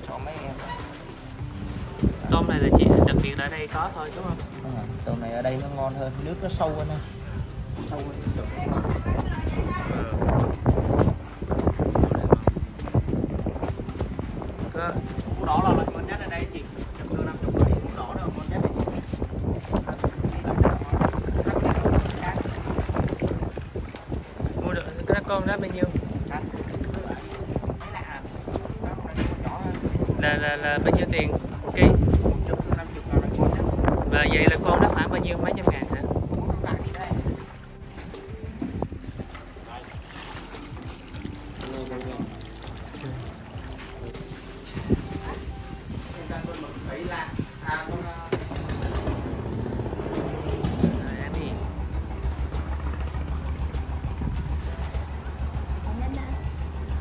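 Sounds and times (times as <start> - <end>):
water splashing and sloshing: 0.0 - 57.0
wind buffeting microphone: 0.0 - 57.0.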